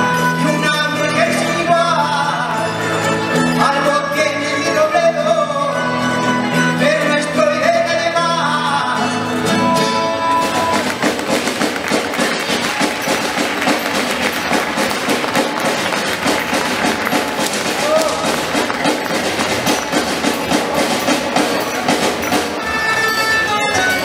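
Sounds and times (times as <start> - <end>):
folk dance music on plucked strings: 0.0 - 24.0
percussion clatter: 9.4 - 24.0.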